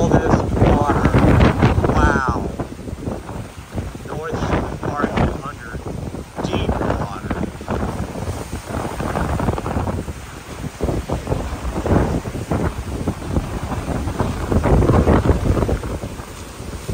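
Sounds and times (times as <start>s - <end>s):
wind gusting across microphone: 0.0s - 16.9s.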